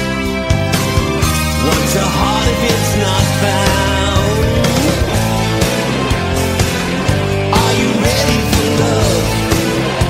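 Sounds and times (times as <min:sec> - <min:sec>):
rock band playing: 0:00.0 - 0:10.0.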